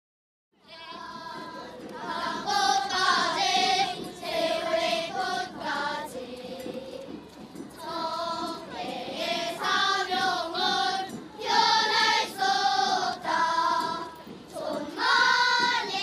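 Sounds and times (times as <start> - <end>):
children's choir singing: 0.6 - 16.0.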